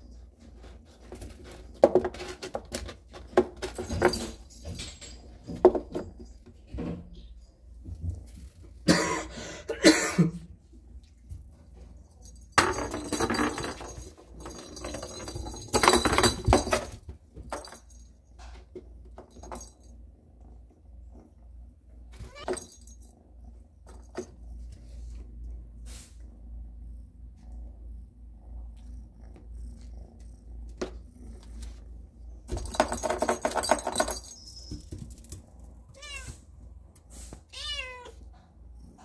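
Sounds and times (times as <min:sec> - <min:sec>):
steady low hum: 0:17.9 - 0:32.7
kitten meowing: 0:36.0 - 0:36.4, 0:37.5 - 0:38.1.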